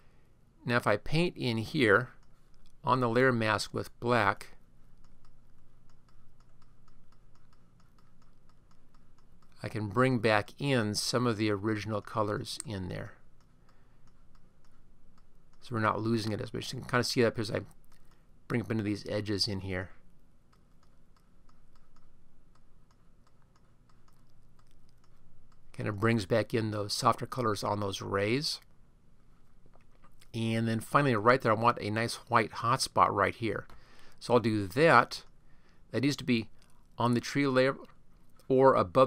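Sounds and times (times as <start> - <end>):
low steady hum: 0.0 - 39.0
computer mouse clicks: 2.0 - 2.8, 5.0 - 9.6, 13.4 - 16.4, 17.6 - 18.9, 20.5 - 25.7.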